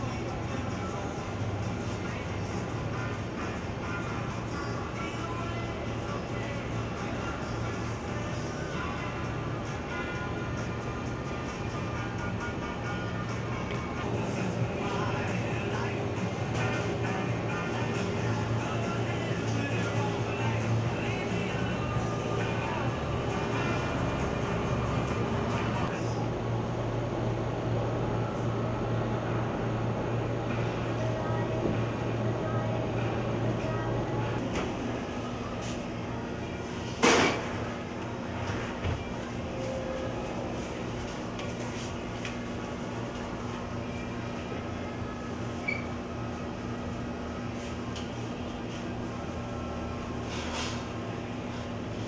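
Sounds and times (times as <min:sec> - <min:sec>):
background music: 0:00.0 - 0:26.2.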